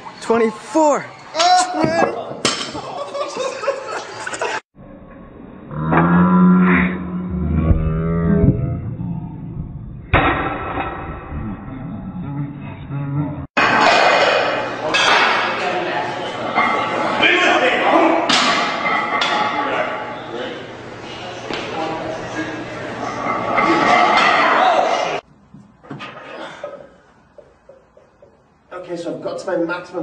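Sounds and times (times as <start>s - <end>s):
metal crashes and clanks: 10.1s - 11.2s
loud voices: 11.2s - 25.2s.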